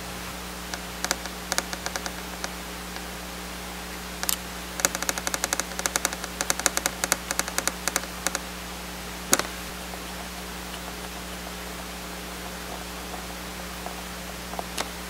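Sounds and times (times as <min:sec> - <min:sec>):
small metal screws clicking: 0:04.2 - 0:08.4.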